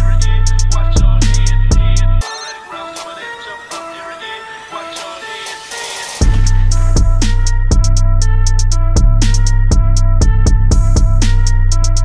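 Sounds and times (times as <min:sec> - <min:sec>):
heavy bass and drums: 0:00.0 - 0:02.2, 0:06.2 - 0:12.0
hi-hat ticks: 0:00.0 - 0:02.2, 0:06.2 - 0:12.0
high synth melody: 0:00.0 - 0:12.0.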